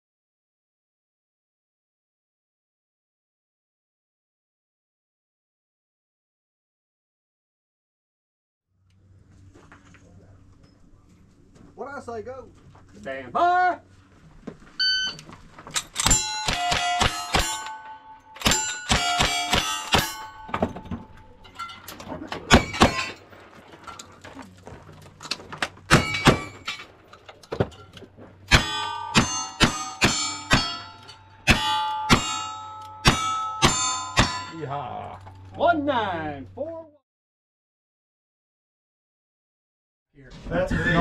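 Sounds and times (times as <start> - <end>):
shot timer beep: 14.8 - 15.2
steel targets ringing: 15.9 - 23.4, 25.9 - 27.0, 27.7 - 35.8
gunshots: 16.0 - 17.8, 18.4 - 20.2.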